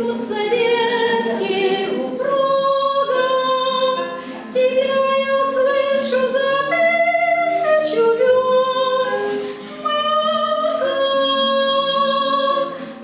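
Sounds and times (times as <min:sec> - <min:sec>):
acoustic guitar: 0:00.0 - 0:13.0
woman singing: 0:00.0 - 0:13.0.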